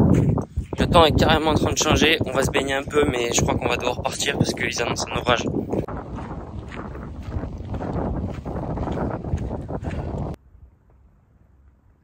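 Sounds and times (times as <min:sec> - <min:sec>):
wind buffeting microphone: 0:00.0 - 0:10.4.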